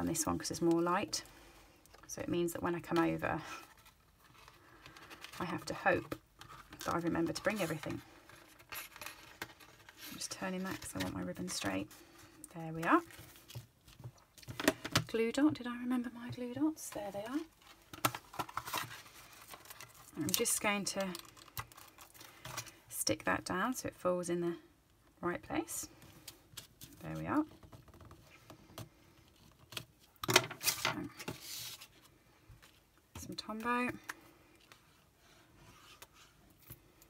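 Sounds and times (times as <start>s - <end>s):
card paper rustle and slide: 30.6s - 32.1s.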